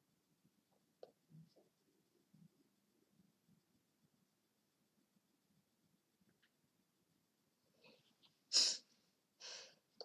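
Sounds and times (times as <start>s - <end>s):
person breathing sharply: 8.5s - 9.8s.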